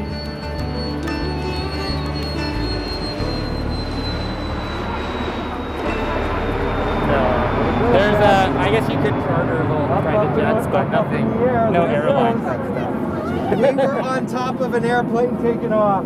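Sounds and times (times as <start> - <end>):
background music: 0.0 - 9.2
jet turbine whine: 2.8 - 16.0
jet engine rush: 3.8 - 16.0.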